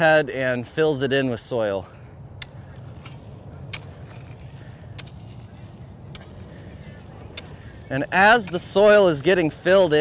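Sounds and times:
low steady rumble: 0.0s - 10.0s
shovel ticks throwing soil: 2.4s - 10.0s.

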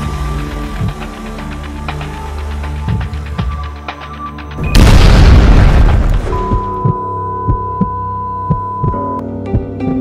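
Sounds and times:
loud explosion: 4.7s - 6.5s
soft regular beat: 6.4s - 10.0s.

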